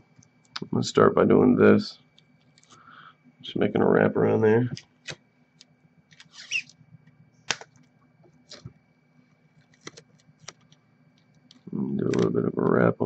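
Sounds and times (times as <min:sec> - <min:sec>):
tape crinkling: 0:05.0 - 0:06.8, 0:09.4 - 0:12.3
soft tape clicks: 0:09.6 - 0:12.8.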